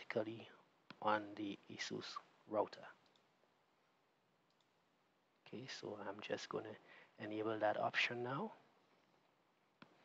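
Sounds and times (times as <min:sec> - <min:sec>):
faint room hiss: 0:00.0 - 0:10.0
computer mouse clicks: 0:03.0 - 0:03.3, 0:04.5 - 0:04.7.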